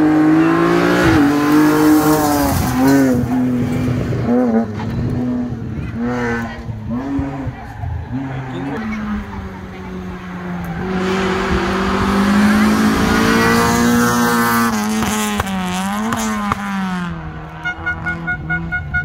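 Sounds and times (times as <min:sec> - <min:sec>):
rally car engine passing: 0:00.0 - 0:18.9.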